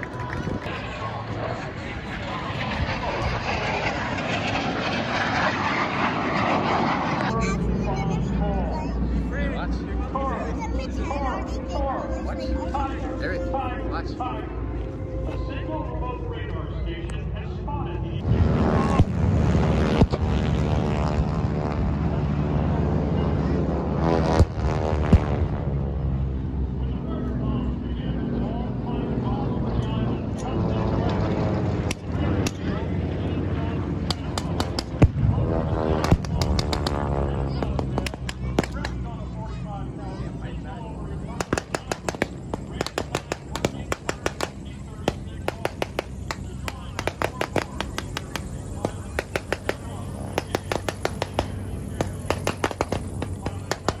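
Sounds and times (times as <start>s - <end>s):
low rumble: 0.0s - 28.1s, 31.0s - 39.9s
jet aircraft flying past: 0.0s - 54.0s
propeller plane engine droning: 0.0s - 54.0s
sharp pyrotechnic bangs: 34.1s - 39.0s, 41.4s - 54.0s.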